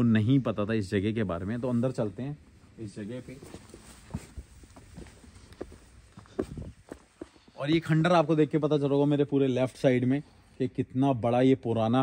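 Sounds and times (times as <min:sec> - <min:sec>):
footsteps on dirt path: 0:03.3 - 0:07.6.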